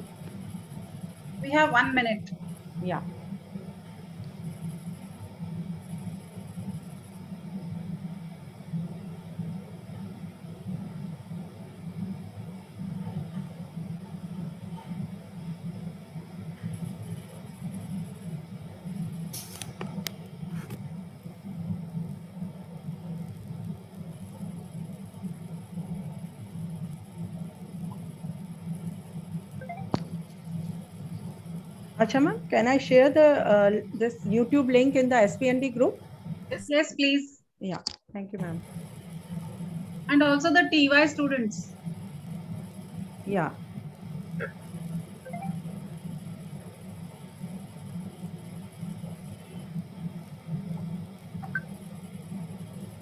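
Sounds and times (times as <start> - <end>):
low room hum: 0.0 - 53.0.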